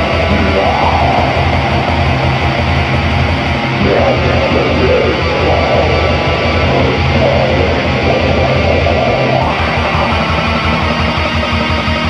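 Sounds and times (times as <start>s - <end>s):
distorted electric guitars: 0.0s - 12.0s.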